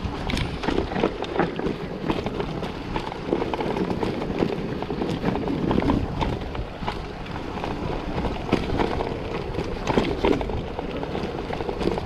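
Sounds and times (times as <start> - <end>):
bike rattling over bumps: 0.0 - 12.0
bike tyres on dirt trail: 0.0 - 12.0
wind on microphone: 0.0 - 12.0.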